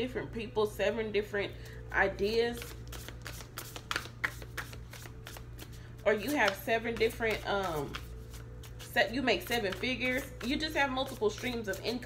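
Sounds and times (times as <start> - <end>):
cards being shuffled: 2.4 - 12.0.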